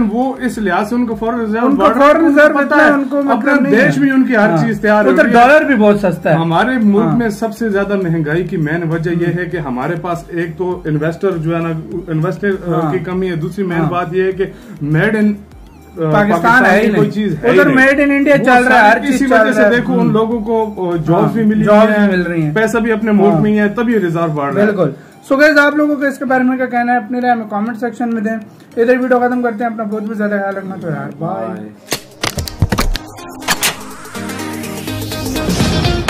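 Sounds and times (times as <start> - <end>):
man speaking: 0.0 - 31.8
held electronic music chord: 30.6 - 36.0
sharp clicks and snaps: 31.8 - 34.2.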